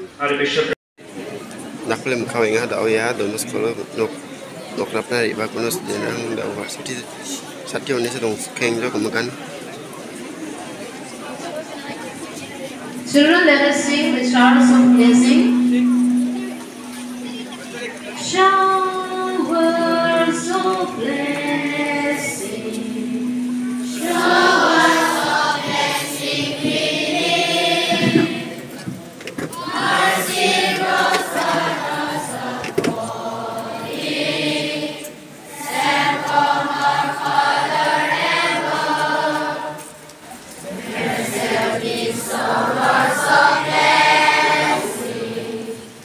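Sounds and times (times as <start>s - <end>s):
children singing together: 13.0s - 40.0s, 40.7s - 46.0s.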